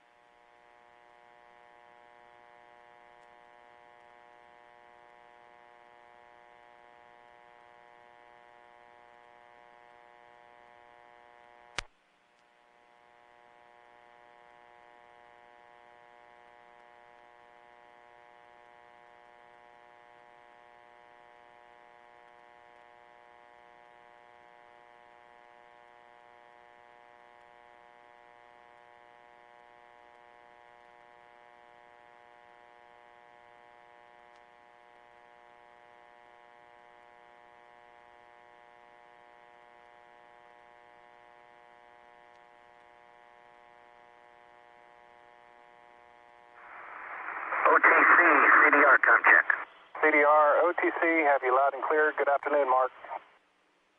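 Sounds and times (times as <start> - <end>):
electrical buzz: 46.6 - 50.1.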